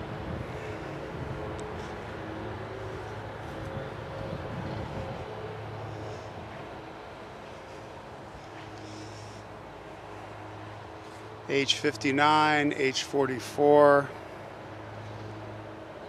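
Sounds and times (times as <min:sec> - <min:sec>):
distant engine drone: 0:00.0 - 0:16.0.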